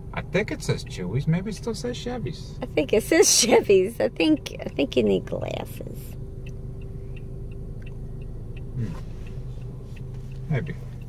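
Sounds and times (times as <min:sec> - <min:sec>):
low hum inside car cabin: 0:00.0 - 0:11.0
turn signal ticking: 0:00.0 - 0:11.0.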